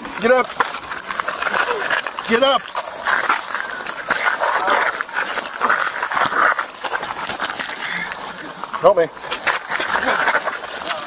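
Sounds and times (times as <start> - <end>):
car fire crackling and hissing: 0.0 - 11.0.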